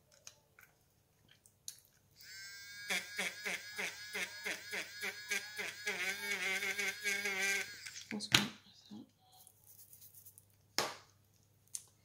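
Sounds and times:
electric eraser whirring: 0:02.2 - 0:08.1.

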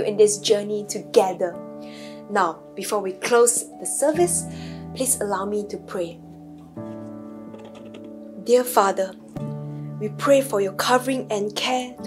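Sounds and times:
soft background music chords: 0:00.0 - 0:12.0.

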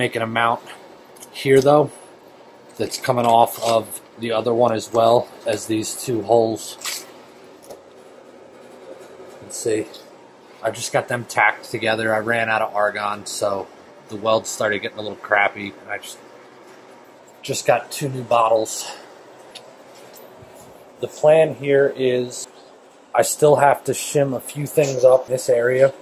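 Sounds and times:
background hiss: 0:00.0 - 0:26.0.

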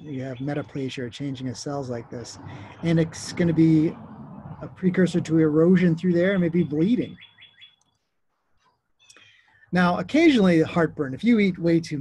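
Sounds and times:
person talking: 0:00.0 - 0:04.0, 0:04.6 - 0:07.2, 0:09.7 - 0:12.0.

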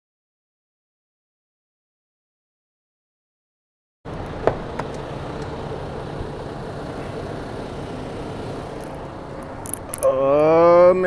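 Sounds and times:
parked truck hum: 0:04.1 - 0:11.0.

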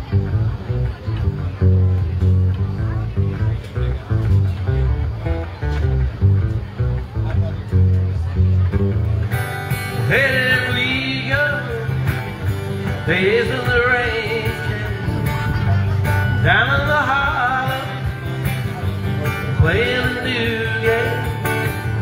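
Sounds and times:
acoustic guitar strumming: 0:00.0 - 0:22.0
man singing: 0:09.9 - 0:22.0.

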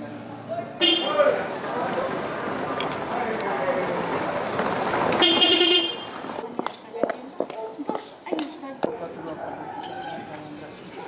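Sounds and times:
car horn: 0:00.8 - 0:01.6, 0:05.1 - 0:06.4
car driving over cobblestones: 0:01.1 - 0:06.5.

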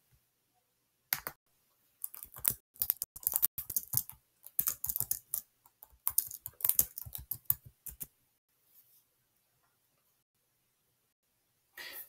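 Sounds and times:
typing on computer keyboard: 0:02.0 - 0:08.1.

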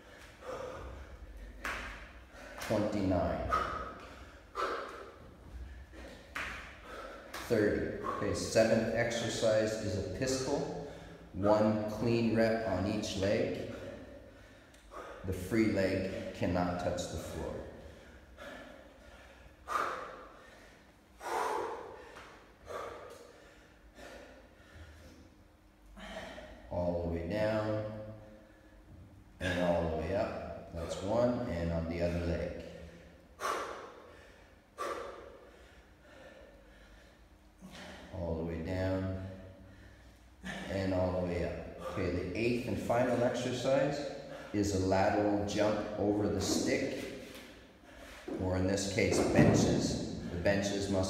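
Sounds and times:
man gasping for breath: 0:00.0 - 0:01.6, 0:25.9 - 0:26.7, 0:32.8 - 0:38.1
man breathing hard: 0:00.0 - 0:09.0, 0:10.6 - 0:11.4, 0:13.6 - 0:15.4, 0:17.6 - 0:26.7, 0:32.7 - 0:38.2, 0:39.0 - 0:40.8, 0:43.1 - 0:44.7, 0:45.5 - 0:48.4.

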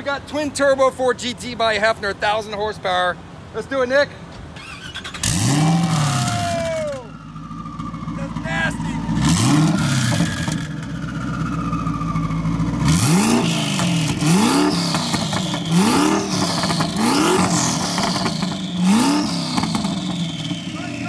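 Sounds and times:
car engine idling and revving: 0:04.2 - 0:21.0.

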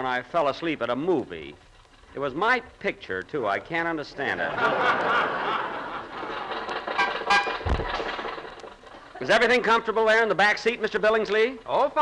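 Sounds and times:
audience laughter: 0:04.3 - 0:09.9
old car driving: 0:04.6 - 0:09.3
car horn toots: 0:07.0 - 0:07.7
low thump: 0:07.5 - 0:08.1.

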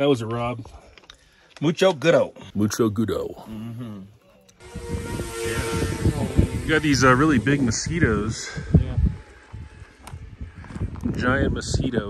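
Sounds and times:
wind rumble on microphone: 0:04.6 - 0:12.0.

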